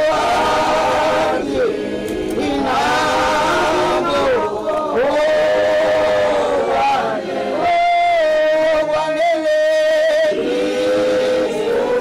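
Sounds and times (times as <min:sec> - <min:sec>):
group singing without instruments: 0:00.0 - 0:12.0.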